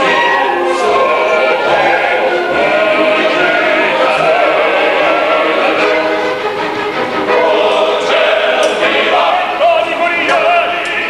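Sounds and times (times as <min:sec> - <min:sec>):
male opera chorus singing: 0:00.0 - 0:11.0.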